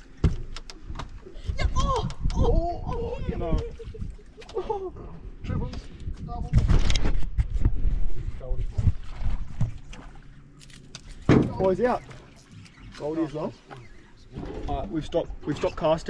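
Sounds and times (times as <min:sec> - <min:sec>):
low steady boat hum: 0:00.0 - 0:06.5, 0:07.7 - 0:16.0
water noise: 0:00.0 - 0:06.8, 0:07.5 - 0:16.0
wind: 0:00.0 - 0:16.0.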